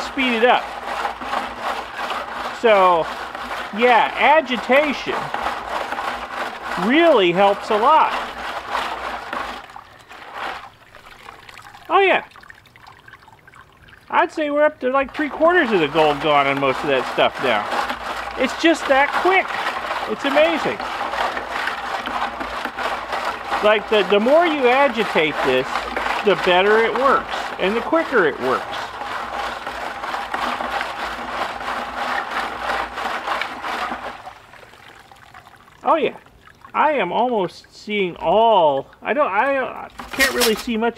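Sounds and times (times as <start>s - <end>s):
liquid sloshing in a plastic bucket: 0.0s - 40.9s
liquid trickling off basket: 0.0s - 40.9s.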